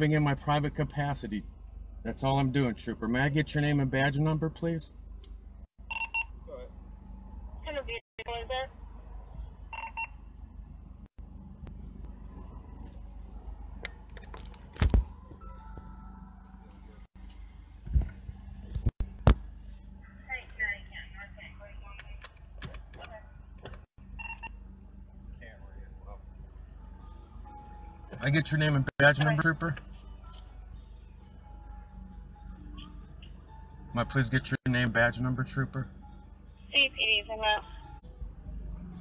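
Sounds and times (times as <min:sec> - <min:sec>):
low hum inside car cabin: 0:00.0 - 0:39.0.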